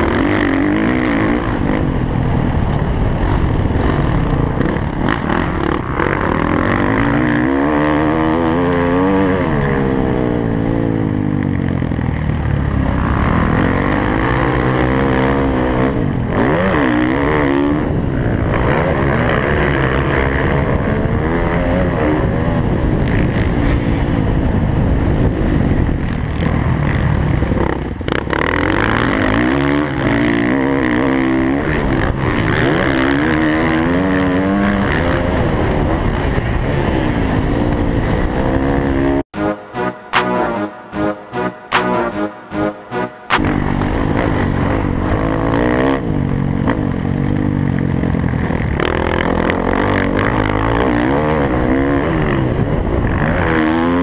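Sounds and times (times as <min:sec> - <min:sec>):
dirt bike engine revving: 0:00.0 - 0:25.2, 0:26.4 - 0:47.4.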